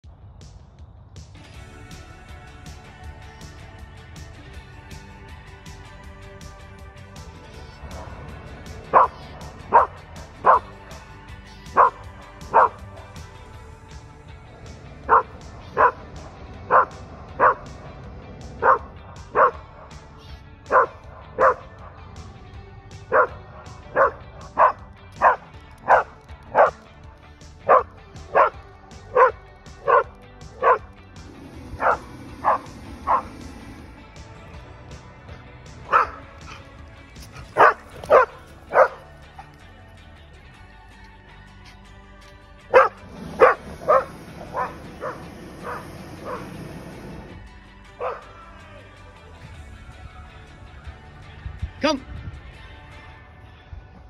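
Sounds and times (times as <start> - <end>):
background music: 0.0 - 54.0
dog barking: 8.9 - 11.1, 11.7 - 12.8, 15.0 - 17.8, 18.6 - 19.9, 20.7 - 22.0, 23.1 - 26.8, 27.6 - 30.9, 31.6 - 33.8, 35.8 - 39.5, 42.7 - 46.8, 48.0 - 48.3.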